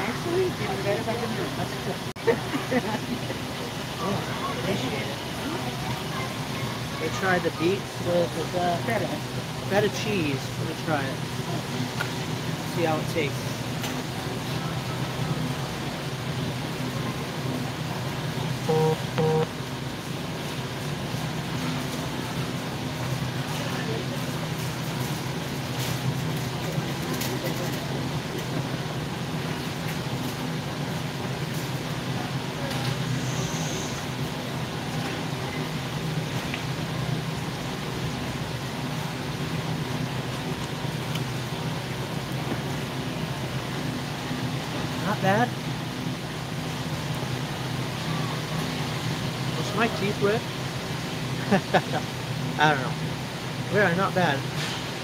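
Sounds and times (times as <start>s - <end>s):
refrigeration and ventilation hum: 0.0s - 55.0s
short beep: 18.7s - 19.5s.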